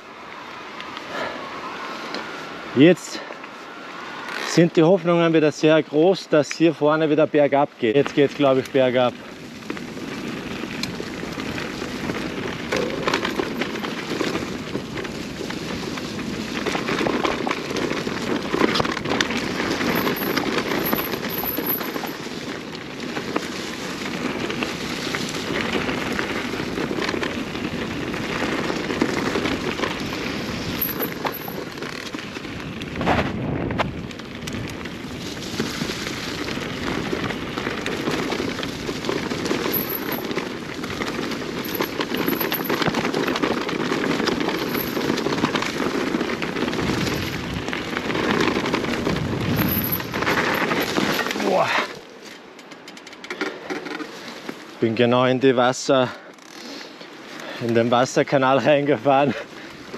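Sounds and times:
bike tyres rattling on stones: 0:04.1 - 0:59.9.

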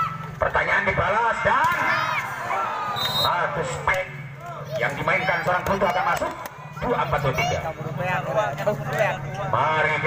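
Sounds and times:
crowd voices: 0:00.0 - 0:10.0
volleyball hits: 0:01.6 - 0:02.1.

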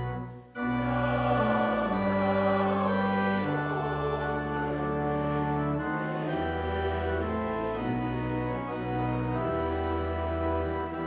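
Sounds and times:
pipe organ: 0:00.0 - 0:11.0
congregation and choir singing hymn: 0:00.6 - 0:11.0.

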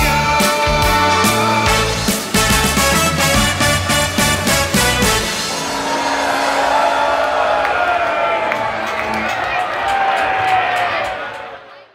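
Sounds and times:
live band music: 0:00.0 - 0:06.9
crowd cheering and whooping: 0:05.4 - 0:11.9.

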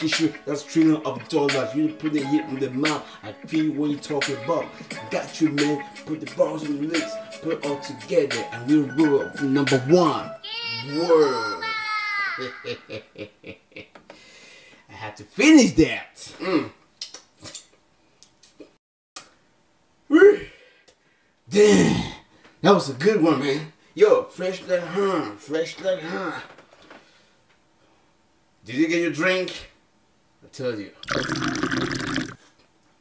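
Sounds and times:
mouth noises near microphone: 0:16.4 - 0:17.8
man slurping and gulping drink: 0:31.0 - 0:32.4.

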